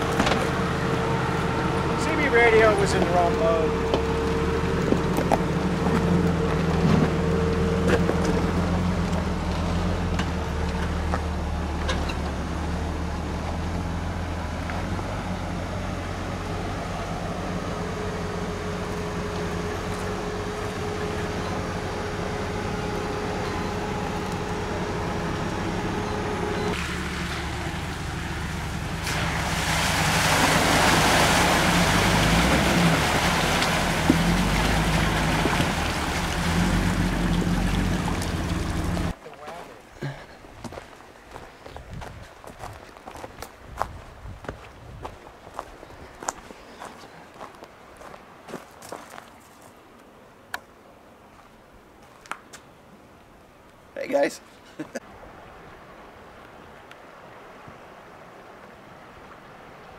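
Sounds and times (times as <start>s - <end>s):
vehicle engine low rumble: 0.0s - 39.2s.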